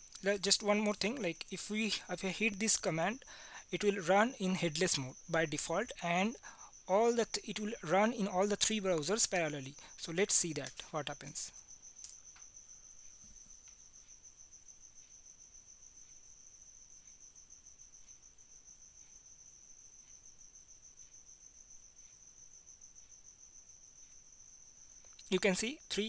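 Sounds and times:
cricket trilling: 0.0s - 26.0s.

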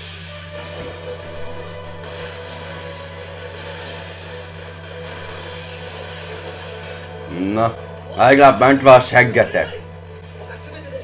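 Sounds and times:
steady low hum: 0.2s - 10.9s.

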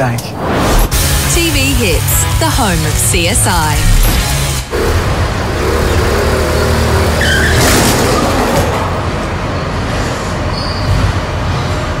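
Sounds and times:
motorcycle engines running: 4.7s - 7.6s.

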